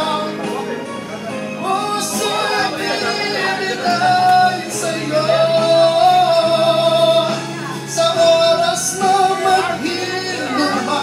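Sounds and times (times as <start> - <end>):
man singing into a microphone: 0.0 - 0.9, 1.5 - 11.0
acoustic guitar: 0.0 - 11.0
keyboard: 0.0 - 11.0.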